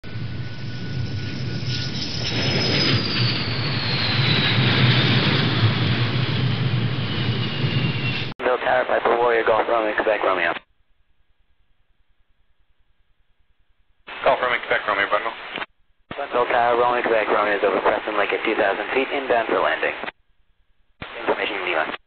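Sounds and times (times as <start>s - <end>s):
jet engine rumble and whine: 0.0s - 10.5s, 16.2s - 20.2s
man speaking over radio: 8.4s - 10.7s, 14.1s - 15.5s, 16.1s - 20.2s, 21.0s - 22.0s.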